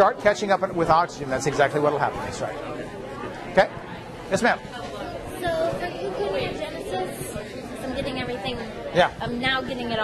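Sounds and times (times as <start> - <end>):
indistinct chatter of students: 0.0 - 10.0.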